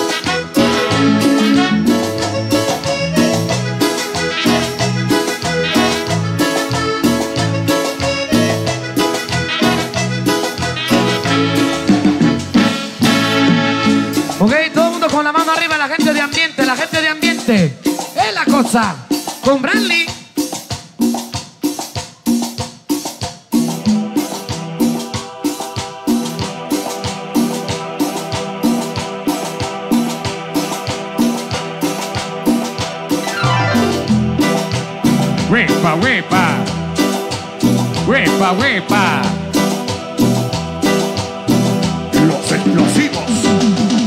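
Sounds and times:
bass guitar notes: 0.0s - 14.5s, 33.2s - 37.0s, 37.6s - 44.0s
latin dance band playing: 0.0s - 44.0s
drum hits: 33.1s - 44.0s.

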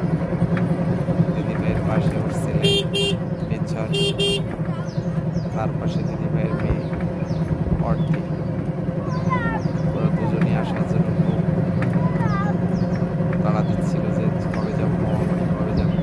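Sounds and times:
auto-rickshaw motor running: 0.0s - 16.0s.

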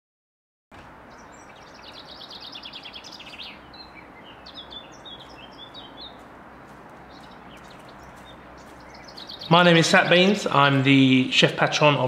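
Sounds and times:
outdoor background hum: 0.8s - 12.0s
songbirds singing: 0.8s - 12.0s.

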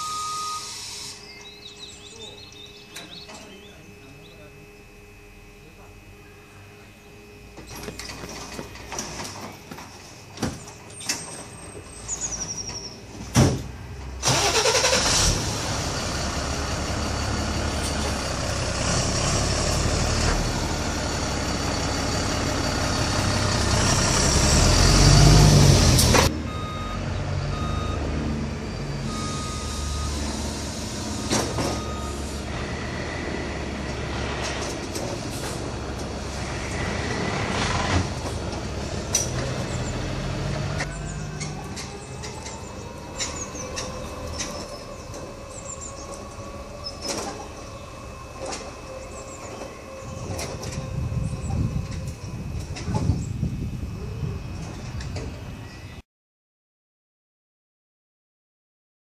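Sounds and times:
scissor lift rushing noise: 14.1s - 55.9s.

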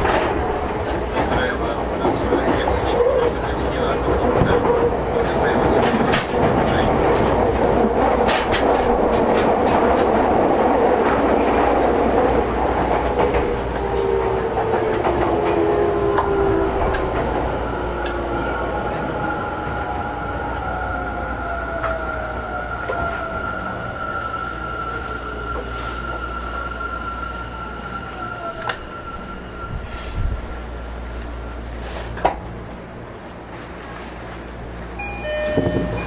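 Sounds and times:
wheels clicking over rail joints: 0.0s - 10.2s
electric train running on rails: 0.0s - 36.0s.

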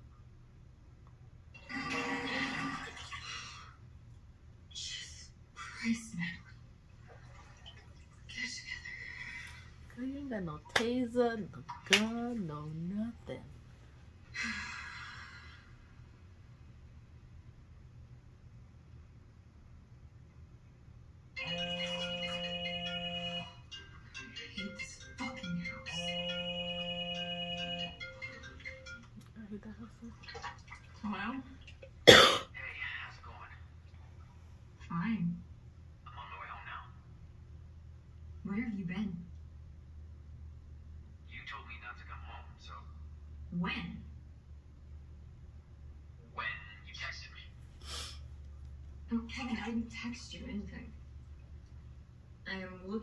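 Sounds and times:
low steady hum: 0.0s - 53.0s
mobile phone ringtone: 21.4s - 29.1s.

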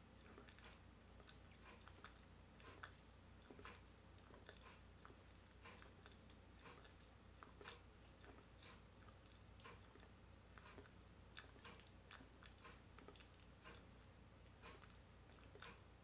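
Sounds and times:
wet mouth clicks and smacks: 0.2s - 13.9s, 14.6s - 15.9s.

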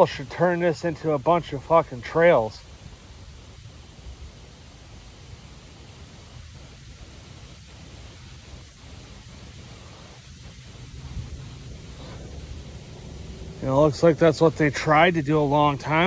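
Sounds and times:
light wind on microphone: 2.6s - 15.0s.

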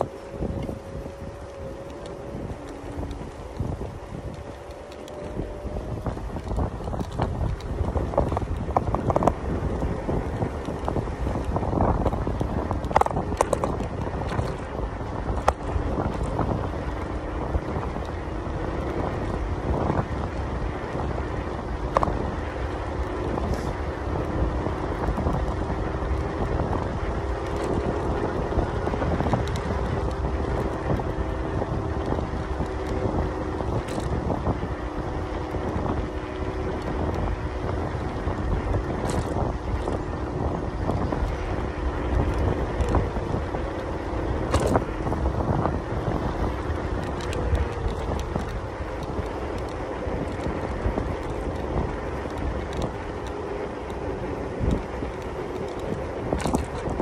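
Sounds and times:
electric motor hum: 0.0s - 57.0s
tyres rumbling on tarmac: 0.0s - 57.0s
wind rushing over microphone: 0.0s - 57.0s.

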